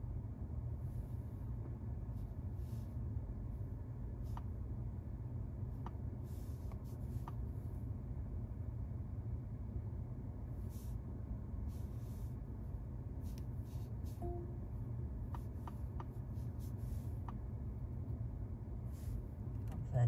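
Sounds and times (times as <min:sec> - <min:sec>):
car cabin hum: 0:00.0 - 0:20.0
short beep: 0:14.2 - 0:14.7.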